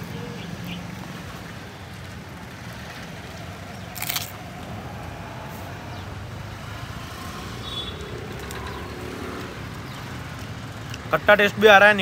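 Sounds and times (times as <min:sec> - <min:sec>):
cars passing rumble: 0:00.0 - 0:12.0.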